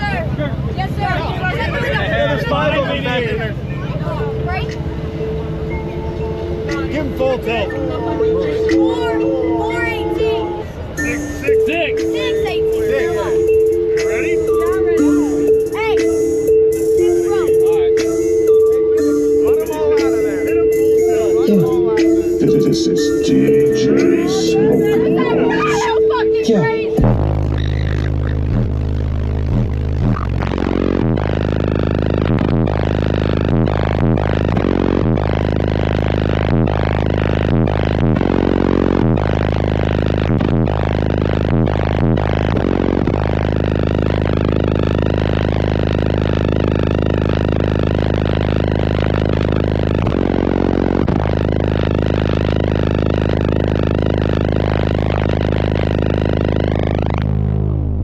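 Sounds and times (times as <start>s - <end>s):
bass-heavy music through subwoofers: 0.0s - 58.0s.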